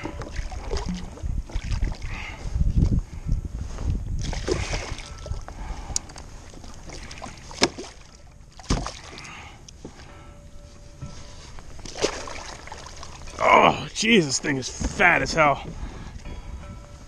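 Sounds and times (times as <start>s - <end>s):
fish thrashing and splashing: 0.0s - 2.1s, 4.2s - 5.4s, 6.4s - 9.3s, 11.8s - 13.4s.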